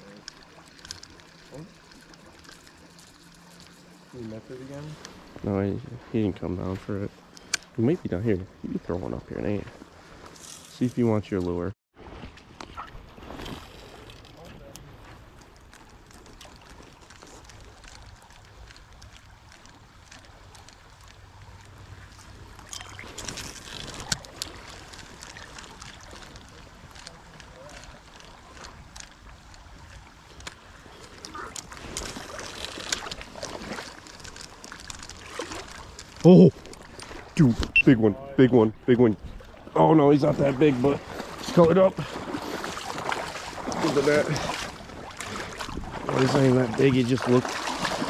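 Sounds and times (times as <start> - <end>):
creek water flowing: 0.0 - 48.0
wind on microphone: 44.4 - 46.1.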